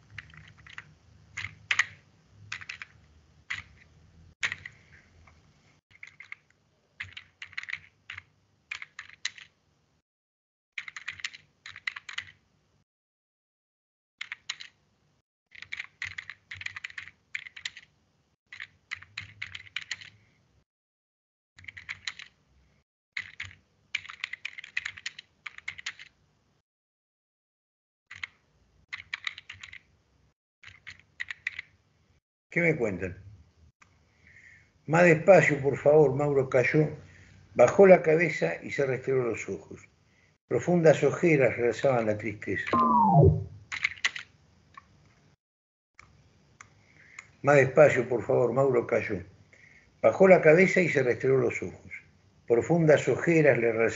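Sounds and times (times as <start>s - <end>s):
typing on computer keyboard: 0.1s - 3.8s, 4.4s - 4.8s, 5.9s - 9.5s, 10.8s - 12.4s, 14.2s - 14.8s, 15.5s - 17.9s, 18.5s - 20.2s, 21.6s - 22.4s, 23.2s - 26.1s, 28.1s - 29.8s, 30.6s - 31.7s, 43.8s - 44.2s.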